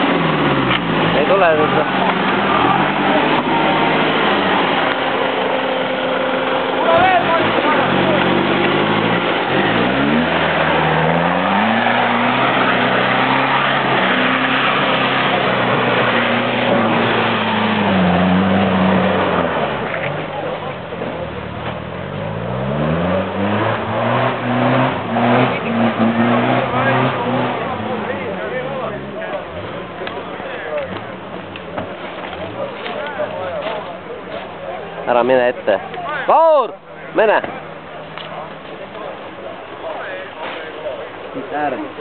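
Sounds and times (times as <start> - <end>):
engine revving hard: 0.0 - 30.2.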